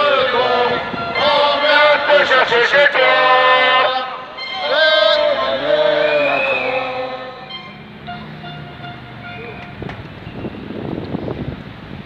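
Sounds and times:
crowd noise: 0.0 - 10.2.

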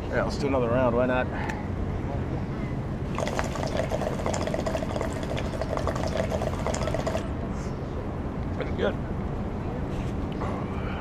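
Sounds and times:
water bubbling in a pipe: 3.2 - 7.3.

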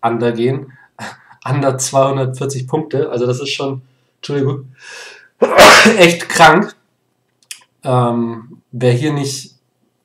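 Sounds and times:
quick breath in: 4.8 - 5.4
man sneezing: 4.9 - 6.2.

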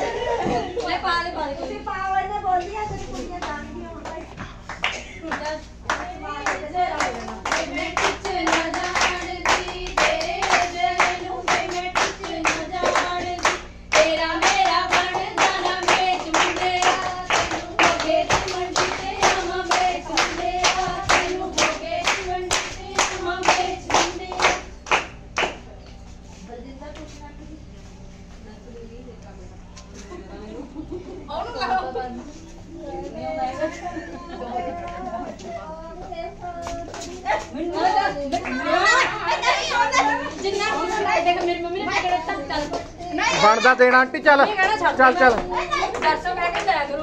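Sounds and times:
hands clapping to a beat: 3.4 - 25.7
women singing folk song: 5.0 - 24.8, 32.9 - 43.4.

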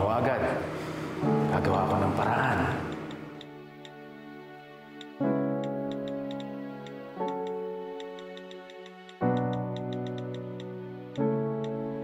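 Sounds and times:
soft sustained music chords: 0.0 - 12.0
phone keyboard typing clicks: 5.6 - 6.5, 7.3 - 11.8.

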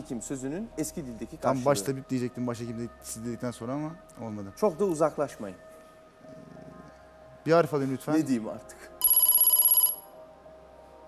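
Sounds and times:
pulsing electronic bell-like ring: 9.0 - 10.2.

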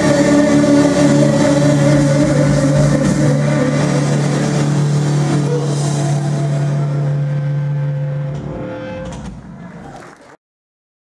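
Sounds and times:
heavy metal band distorted chord: 0.0 - 9.4.

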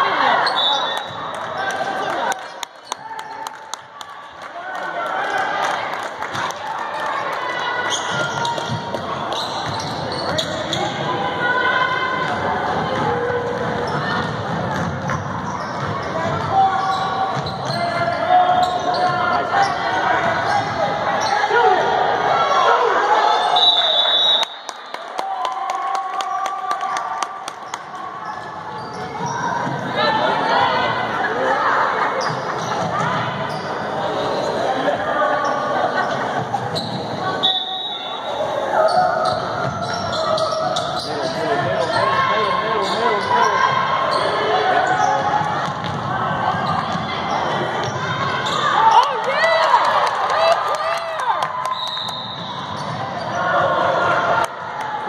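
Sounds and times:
voices of players and spectators: 0.0 - 55.0.

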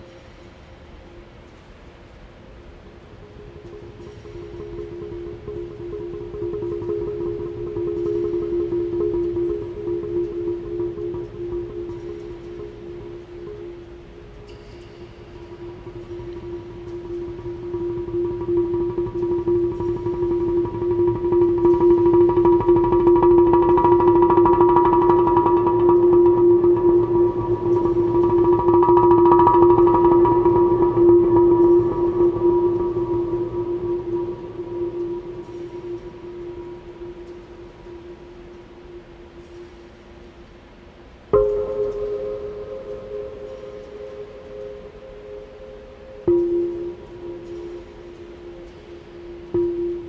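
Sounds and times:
earthenware jars ringing under mallets: 3.4 - 38.3.

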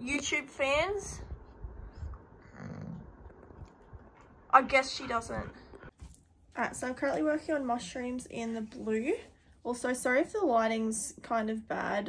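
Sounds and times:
low dog sound: 1.9 - 6.0
dog panting: 4.1 - 6.1.

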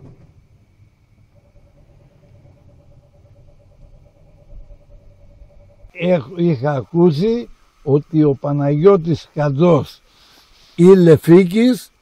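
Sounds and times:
distant engine idling: 0.0 - 10.7
thin steady hum: 0.0 - 12.0.

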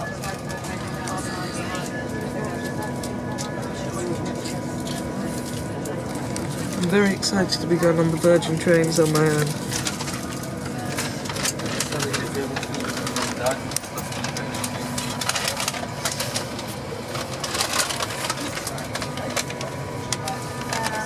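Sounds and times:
indistinct passenger voices: 0.0 - 21.0.

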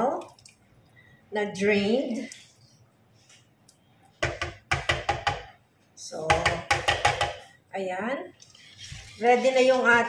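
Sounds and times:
knife scraping inside tin can: 8.4 - 10.0.

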